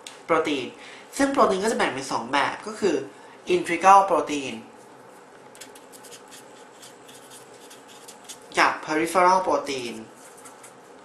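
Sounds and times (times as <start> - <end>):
pen scratching while writing: 5.8 - 8.4.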